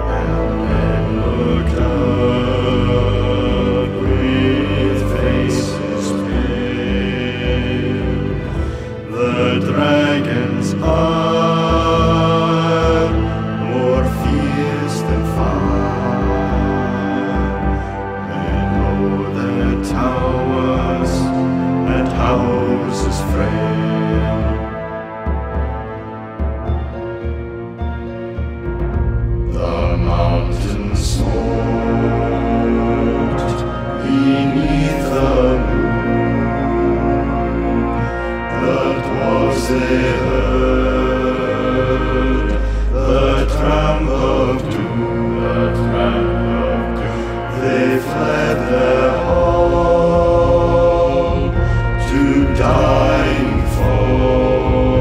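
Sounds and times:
deep male voices chanting: 0:00.0 - 0:25.8, 0:29.4 - 0:55.0
music with low notes: 0:00.0 - 0:55.0
low drone: 0:26.6 - 0:55.0.

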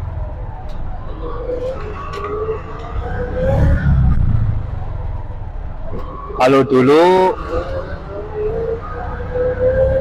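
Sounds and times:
auto rickshaw engine rumbling: 0:00.0 - 0:10.0.

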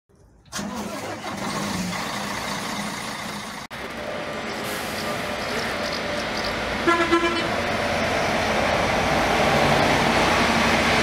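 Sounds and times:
road noise: 0:00.1 - 0:11.0
diesel engine running: 0:00.5 - 0:11.0.

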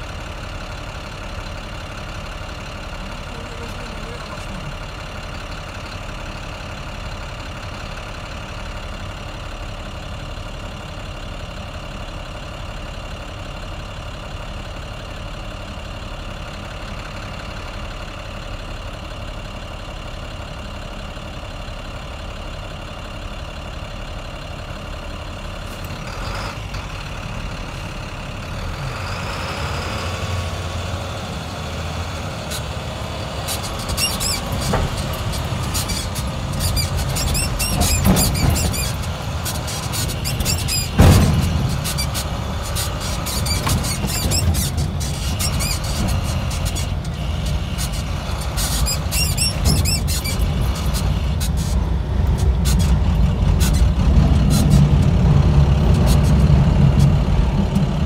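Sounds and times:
vehicle engine: 0:00.0 - 0:58.0.

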